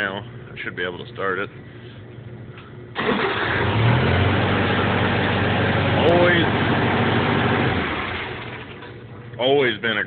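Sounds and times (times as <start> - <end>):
tractor engine starting and running: 2.9 - 9.6.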